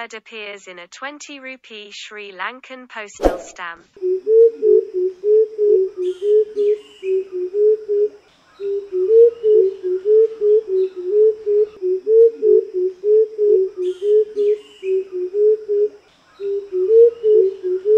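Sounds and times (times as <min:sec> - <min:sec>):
coucal deep hooting: 0:04.0 - 0:17.9
faint bird chirps: 0:04.1 - 0:17.9.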